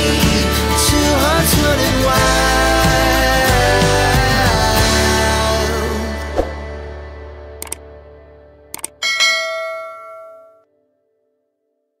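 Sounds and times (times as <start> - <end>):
bell chime ringing: 9.0 - 10.6.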